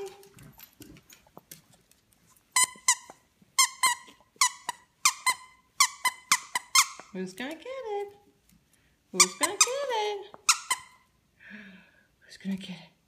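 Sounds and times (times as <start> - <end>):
dog toy squeaking: 2.6 - 7.1, 9.2 - 11.1.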